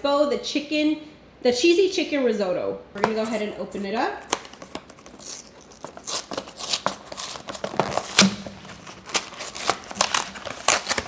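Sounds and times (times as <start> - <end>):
cardboard box tearing: 4.6 - 11.0.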